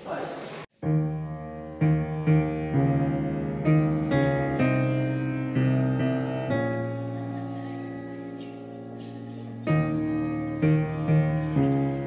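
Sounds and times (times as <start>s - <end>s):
slow solo piano chords: 0.8s - 12.0s.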